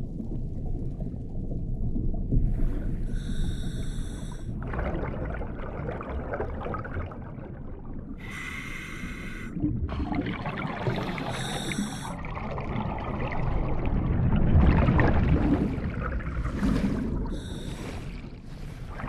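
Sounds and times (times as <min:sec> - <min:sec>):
low underwater rumble: 0:00.0 - 0:08.3, 0:09.6 - 0:19.0
hissing regulator inhalations: 0:03.1 - 0:04.4, 0:08.2 - 0:09.6, 0:11.2 - 0:12.2, 0:17.4 - 0:18.2
bubbling exhalations: 0:09.4 - 0:19.0.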